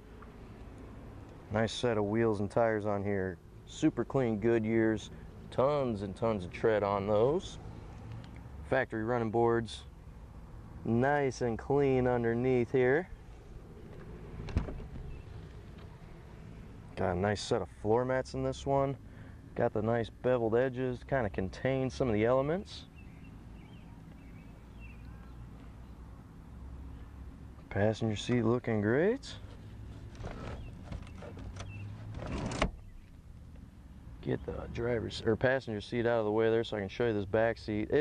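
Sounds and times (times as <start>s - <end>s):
faint background noise: 0.0s - 38.0s
car seat sliding forward: 13.9s - 15.9s.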